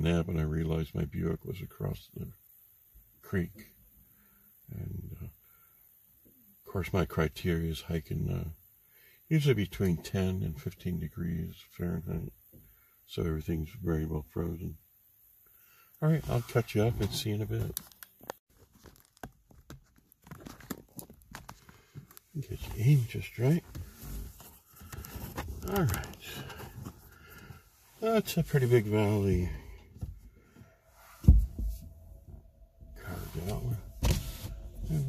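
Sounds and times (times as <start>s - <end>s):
man mumbling: 25.5s - 26.6s
low thump: 30.0s - 35.0s.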